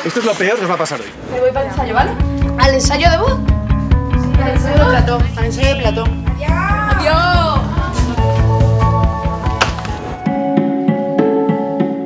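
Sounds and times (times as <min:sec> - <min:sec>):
background music with beat: 0:01.6 - 0:12.0.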